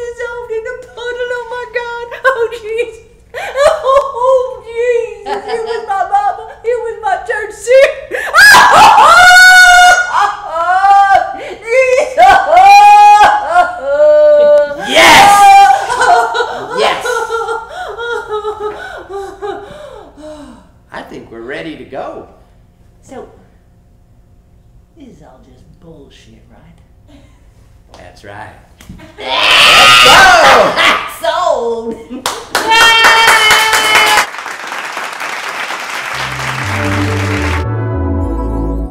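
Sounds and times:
people laughing: 3.4s - 6.8s, 11.8s - 19.7s
people laughing breathily: 15.7s - 20.0s
people clapping: 32.2s - 37.7s
low music notes: 36.2s - 38.9s.

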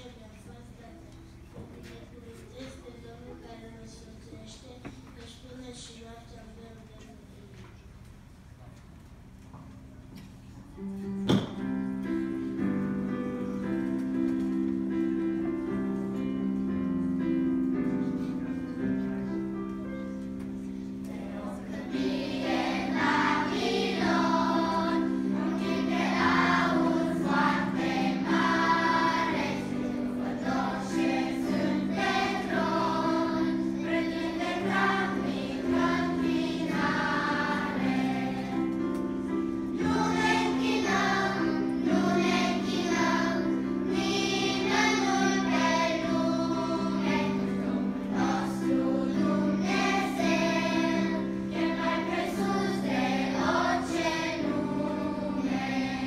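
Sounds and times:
children's choir singing a hymn: 10.6s - 56.0s
held keyboard chords: 10.8s - 56.0s.

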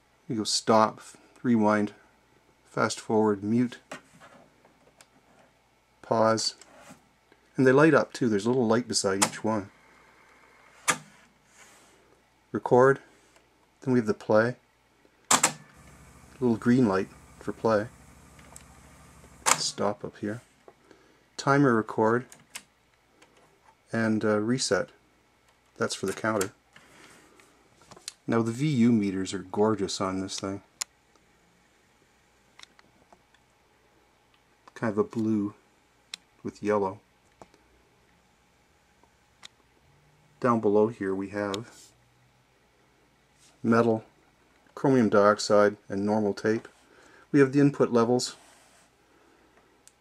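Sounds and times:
faint hiss: 6.0s - 22.3s.

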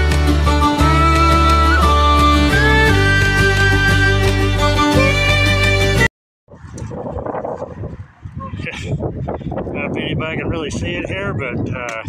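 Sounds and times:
music: 0.0s - 6.1s
traffic hum: 6.5s - 10.8s
wind on microphone: 6.5s - 12.0s.

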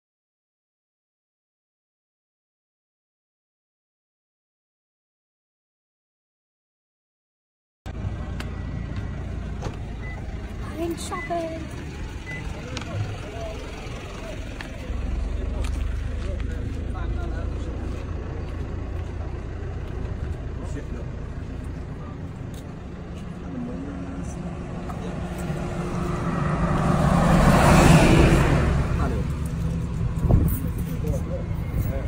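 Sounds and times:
vehicle engine rumble passing: 7.9s - 32.0s.

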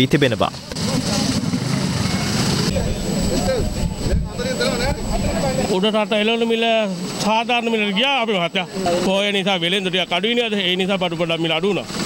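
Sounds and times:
vehicle engine rumble: 0.0s - 5.7s
people talking indistinctly: 0.0s - 12.0s.

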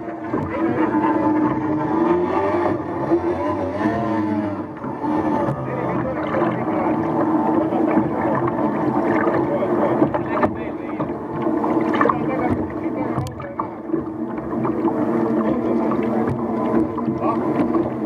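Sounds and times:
racing boat engines running: 0.0s - 18.0s.

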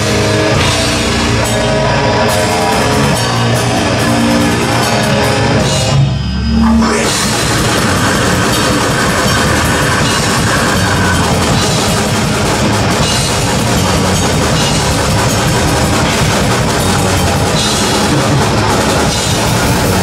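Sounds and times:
fast dense drumming: 0.0s - 6.2s, 6.8s - 20.0s
bass guitar: 0.0s - 20.0s
distorted electric guitars: 0.0s - 20.0s.

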